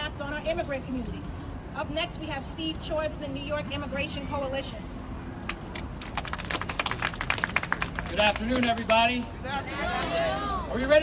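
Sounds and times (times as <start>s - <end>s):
small group applauding: 6.0s - 9.0s.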